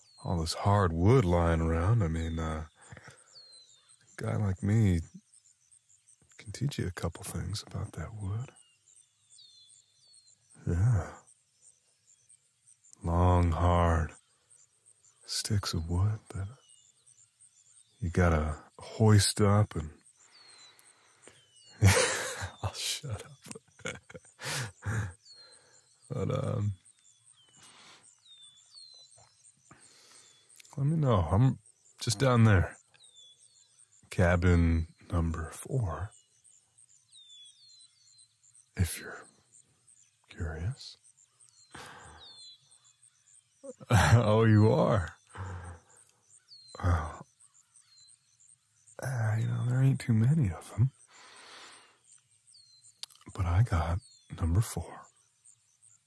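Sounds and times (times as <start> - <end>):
bird chirp: 0.0 - 56.0
insects chirping: 0.0 - 56.0
soft breathy hiss: 2.7 - 4.2, 8.5 - 30.8, 50.9 - 52.8.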